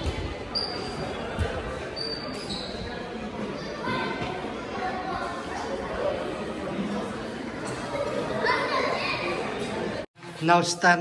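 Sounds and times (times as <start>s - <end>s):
murmur of background voices: 0.0s - 11.0s.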